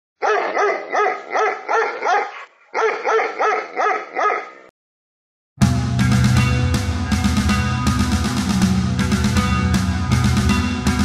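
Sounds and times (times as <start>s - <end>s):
dog barking rapidly: 0.2s - 4.7s
heavy metal music with guitars: 5.6s - 11.0s.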